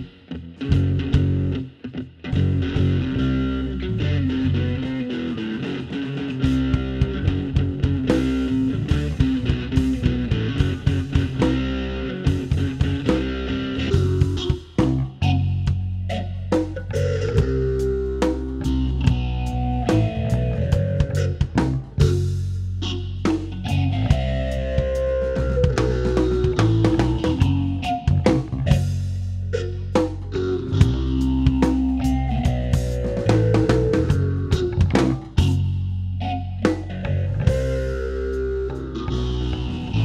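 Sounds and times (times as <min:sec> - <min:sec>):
drum kit: 0:00.0 - 0:01.6, 0:02.3 - 0:03.5, 0:04.2 - 0:40.0
bass guitar: 0:00.0 - 0:40.0
electric guitar: 0:00.0 - 0:40.0.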